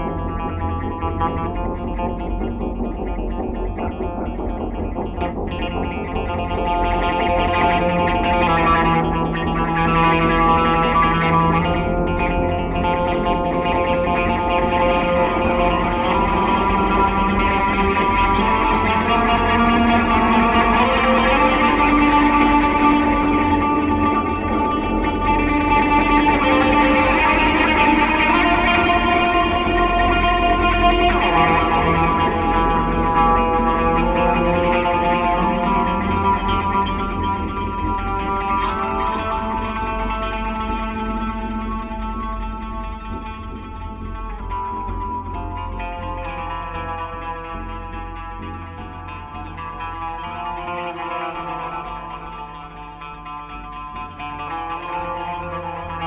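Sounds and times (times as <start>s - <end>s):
electric guitars with echo: 0.0s - 56.0s
steady low drone: 0.0s - 56.0s.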